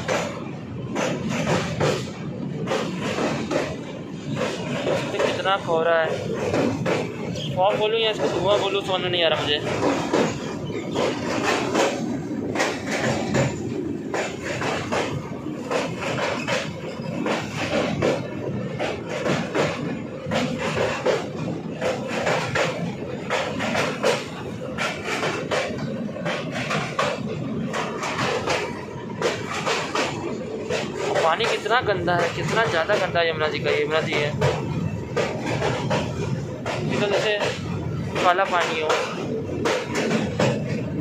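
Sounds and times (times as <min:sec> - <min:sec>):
train wheels clattering and rattling: 0:00.0 - 0:41.0.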